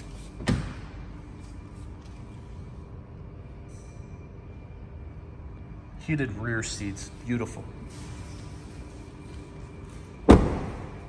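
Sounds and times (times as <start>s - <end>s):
car door shutting with thud: 10.3s - 11.0s.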